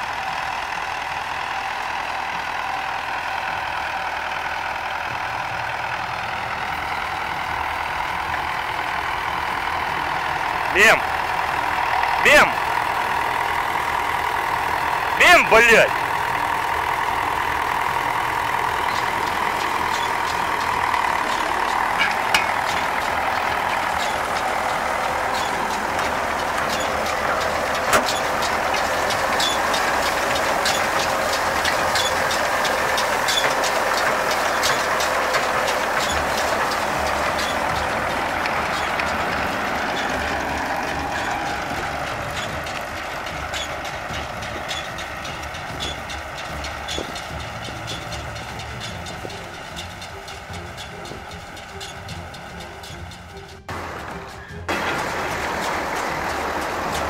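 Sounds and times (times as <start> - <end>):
tractor engine running: 0.0 - 57.0
baler metallic clicks and knocks: 11.2 - 57.0.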